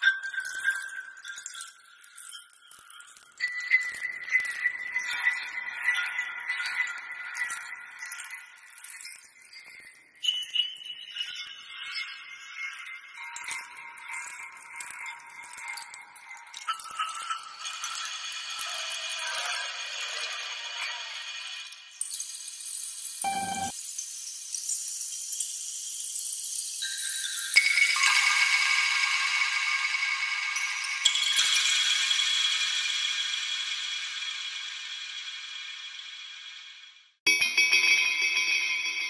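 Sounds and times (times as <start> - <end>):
bamboo wind chimes rattling: 0.3 - 12.0.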